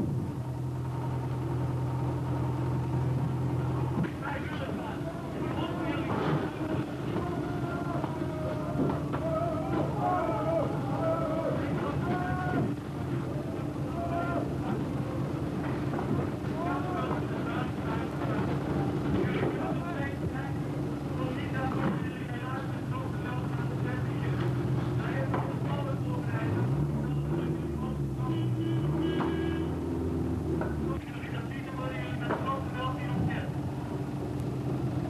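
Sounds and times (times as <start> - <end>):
indistinct voices: 3.5 - 29.8.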